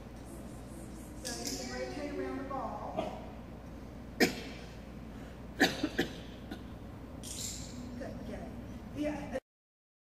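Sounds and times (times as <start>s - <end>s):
person coughing: 4.2s - 4.8s, 5.6s - 6.7s.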